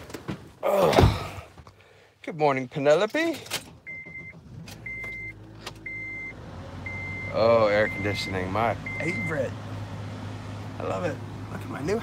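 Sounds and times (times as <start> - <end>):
car engine humming: 3.7 - 12.0
car warning chime beeps: 3.8 - 9.5.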